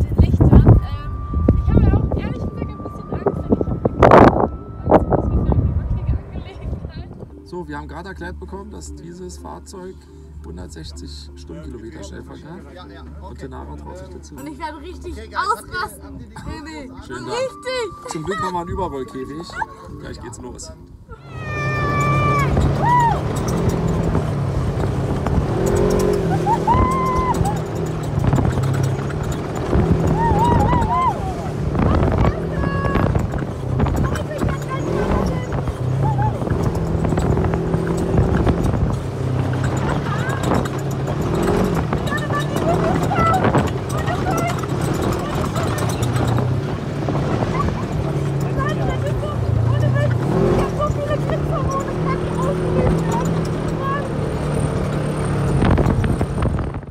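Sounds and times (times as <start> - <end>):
off-road vehicle engine: 0.0 - 56.9
riders' voices: 25.7 - 54.2.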